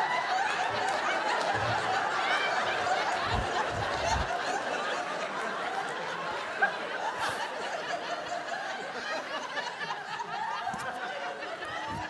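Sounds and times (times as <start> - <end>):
audience laughing: 0.0 - 12.0
low thuds: 3.3 - 4.3.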